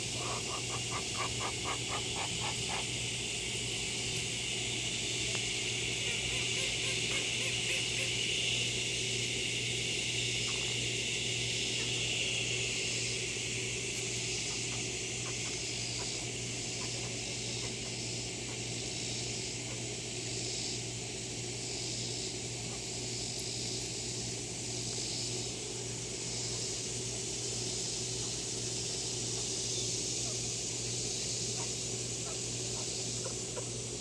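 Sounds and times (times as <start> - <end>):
ducks calling: 0.0 - 3.1, 31.5 - 34.0
high-pitched hiss: 0.0 - 34.0.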